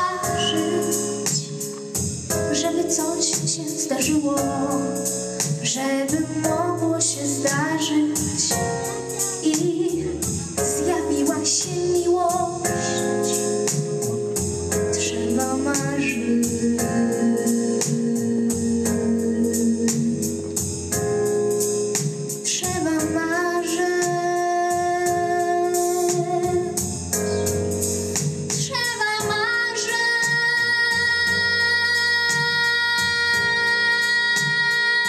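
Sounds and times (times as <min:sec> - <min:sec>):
backing track with steady beat: 0:00.0 - 0:35.0.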